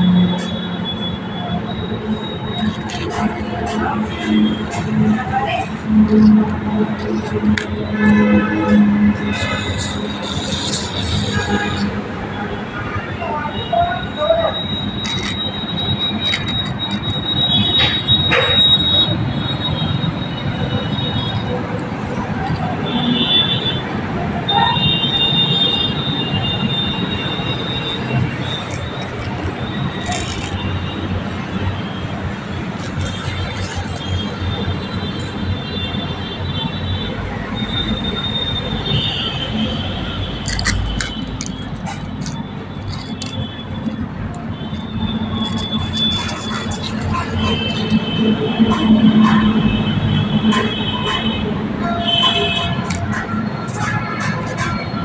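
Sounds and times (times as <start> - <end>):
toy wheels rumbling on concrete: 26.5 - 35.8, 38.9 - 55.0.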